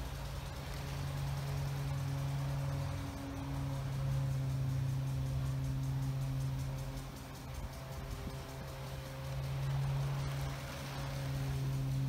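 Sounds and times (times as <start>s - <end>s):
hiss: 0.0s - 12.0s
steady low hum: 0.0s - 12.0s.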